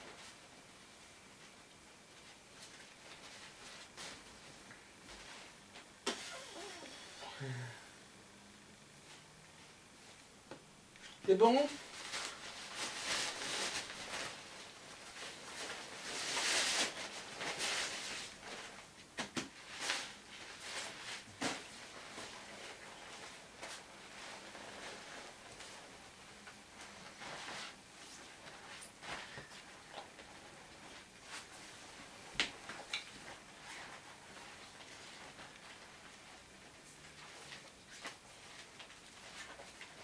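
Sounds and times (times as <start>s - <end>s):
vinyl rustling and crinkling: 0.0s - 6.0s, 9.0s - 40.0s.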